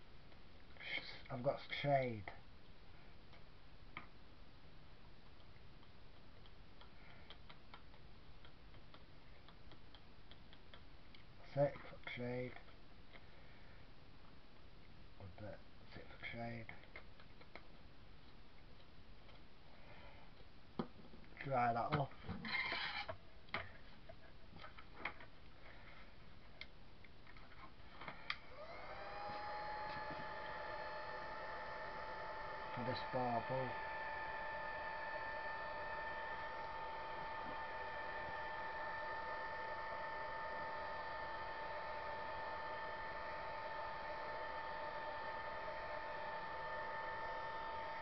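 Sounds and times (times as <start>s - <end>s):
heat gun fan whine: 28.0s - 48.0s.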